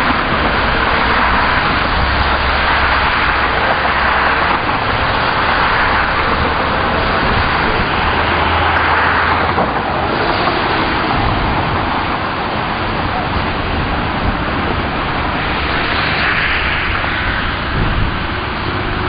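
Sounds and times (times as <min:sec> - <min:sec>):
rushing outdoor noise: 0:00.0 - 0:19.0.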